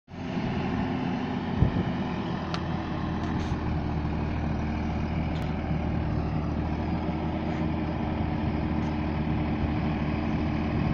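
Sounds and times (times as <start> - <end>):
tractor diesel engine running: 0.1 - 10.9.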